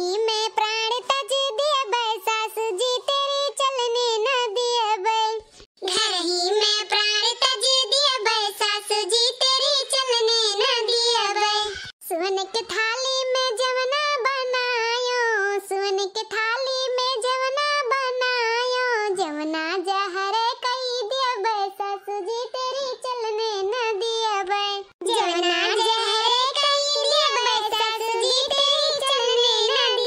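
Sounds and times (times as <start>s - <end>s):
high-pitched voice singing: 0.0s - 30.0s.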